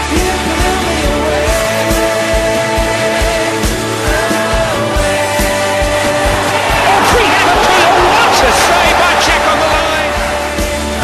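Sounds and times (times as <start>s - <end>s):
rock music: 0.0s - 11.0s
stadium crowd noise: 5.6s - 11.0s
voices shouting: 6.0s - 10.7s.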